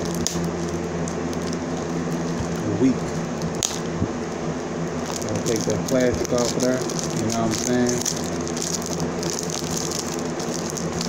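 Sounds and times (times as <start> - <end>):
plastic shrink-wrap crinkling: 0.0 - 3.9, 5.0 - 11.0
steady room hum: 0.0 - 11.0.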